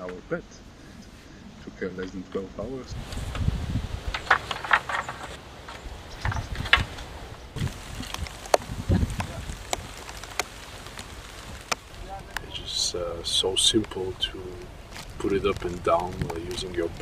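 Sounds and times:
low rumbles: 0.0 - 17.0
wooden clicks and knocks: 4.1 - 7.1.

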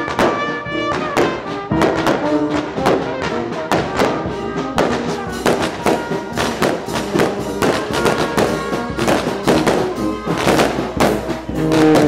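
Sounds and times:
brass band playing a march: 0.0 - 12.0.

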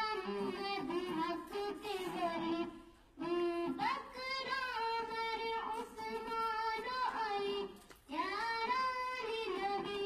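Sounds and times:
girl singing unaccompanied: 0.0 - 10.0.

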